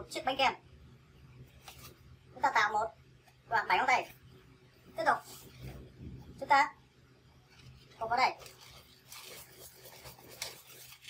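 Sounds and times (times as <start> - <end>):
balloons rubbing scratchily: 7.7 - 11.0.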